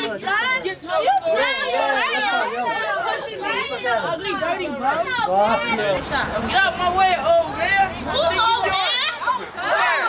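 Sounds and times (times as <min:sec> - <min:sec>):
voices talking and shouting: 0:00.0 - 0:10.0.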